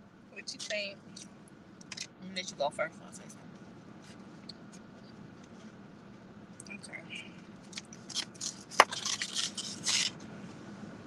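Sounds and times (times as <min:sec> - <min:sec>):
rustling food packaging: 0:07.7 - 0:10.2.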